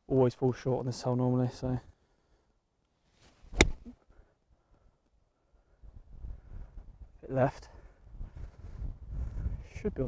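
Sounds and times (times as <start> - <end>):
golf club striking ball: 3.5 - 3.9.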